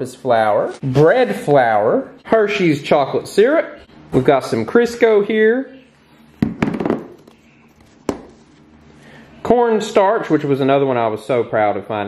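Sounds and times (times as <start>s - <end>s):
packaging crackling and knocking: 6.4s - 7.4s.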